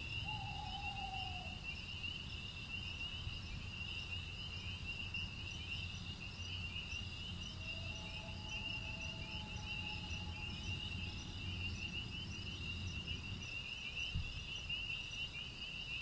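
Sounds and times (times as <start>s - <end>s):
crickets chirping: 0.0s - 16.0s.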